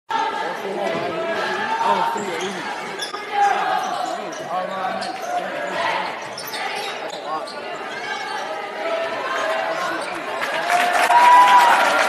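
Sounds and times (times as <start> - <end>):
crowd chatter: 0.1 - 12.0.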